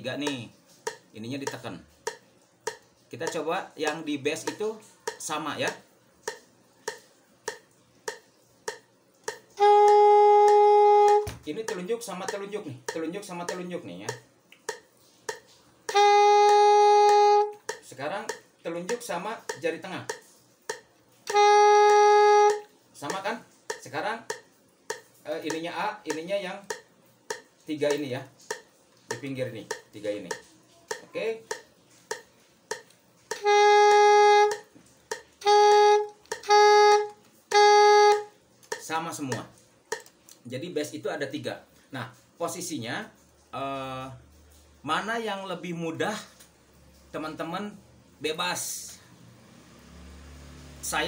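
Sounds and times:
soprano saxophone held note: 0:09.6 - 0:11.4, 0:15.9 - 0:17.6, 0:21.3 - 0:22.6, 0:33.4 - 0:34.6, 0:35.4 - 0:38.3.

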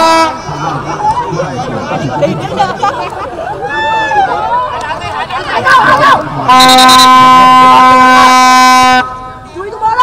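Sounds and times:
horn blast: 0:00.0 - 0:00.5, 0:06.4 - 0:09.5.

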